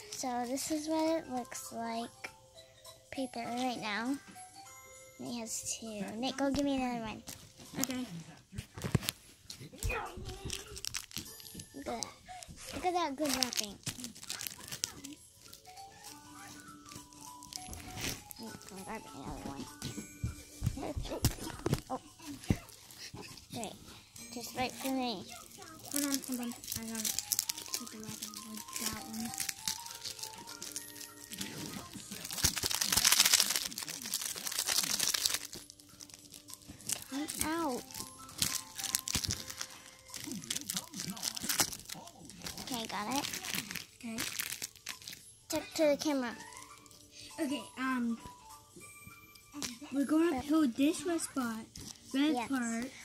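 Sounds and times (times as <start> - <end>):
plastic wrapper crinkling: 5.8 - 47.1.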